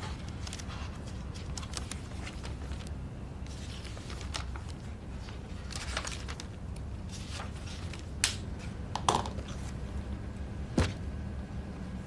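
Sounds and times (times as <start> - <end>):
notebook pages rustling: 0.0 - 8.6
low room hum: 0.0 - 12.0.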